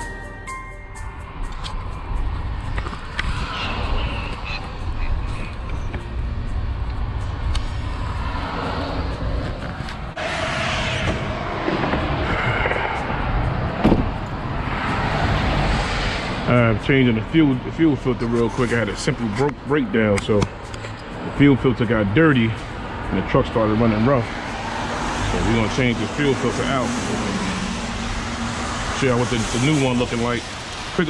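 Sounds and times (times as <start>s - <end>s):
background music: 0.0s - 9.3s.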